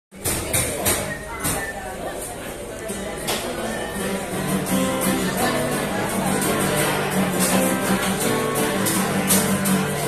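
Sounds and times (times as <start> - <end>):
chatter of voices: 0.1 - 10.0
acoustic guitars strummed: 2.9 - 10.0.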